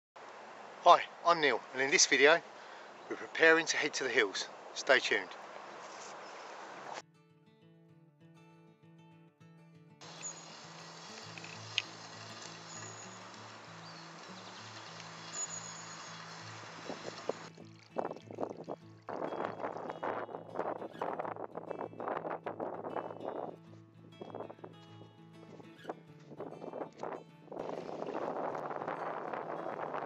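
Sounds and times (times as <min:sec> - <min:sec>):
outdoor hiss: 0:10.0 - 0:17.5
gusty rushing wind noise: 0:16.4 - 0:17.5, 0:18.4 - 0:23.6, 0:26.3 - 0:30.0.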